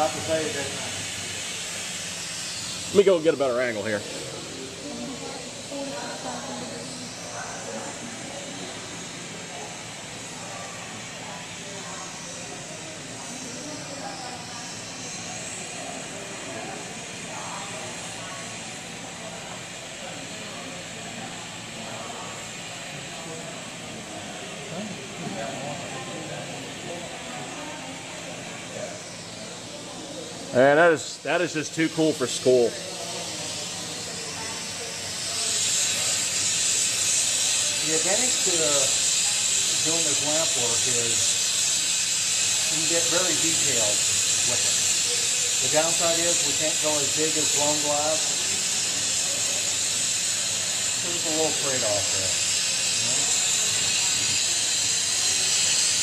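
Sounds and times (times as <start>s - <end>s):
torch flame hissing: 0.0s - 56.0s.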